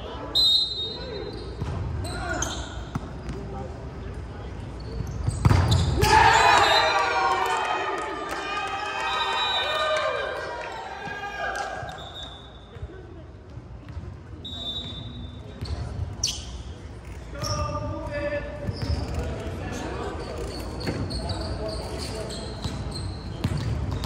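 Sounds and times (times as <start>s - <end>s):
shoe squeaks: 0.3s - 3.0s, 4.7s - 6.0s, 11.9s - 12.8s, 14.4s - 17.9s, 18.6s - 24.0s.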